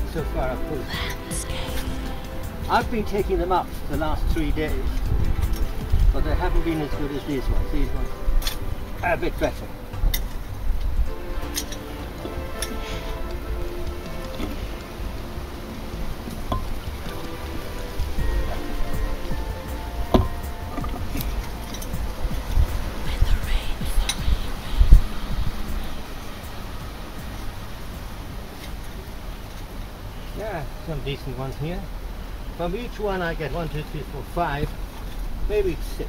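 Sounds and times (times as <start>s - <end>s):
steady low rumble: 0.0s - 30.2s
faint music: 0.0s - 36.0s.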